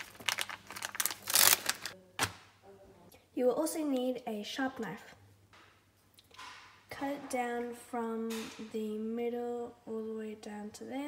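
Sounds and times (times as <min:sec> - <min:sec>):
plastic packet crinkling: 0:00.0 - 0:02.3.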